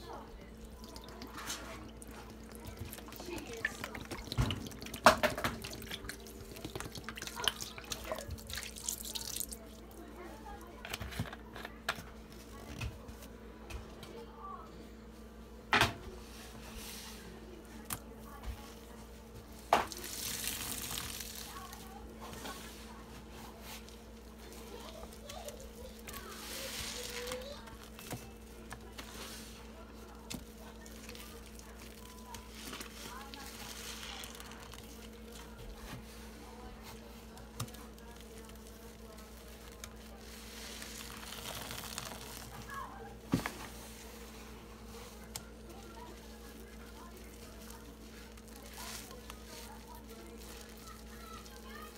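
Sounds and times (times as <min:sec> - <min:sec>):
wet sponge squishing: 0:00.1 - 0:10.4, 0:18.6 - 0:51.9
soft rustle of hand on sponge: 0:16.2 - 0:17.5.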